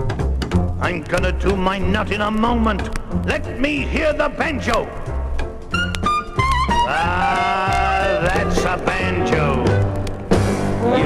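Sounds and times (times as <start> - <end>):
bass and drums beat: 0.0 - 11.0
trad jazz band playing: 0.0 - 11.0.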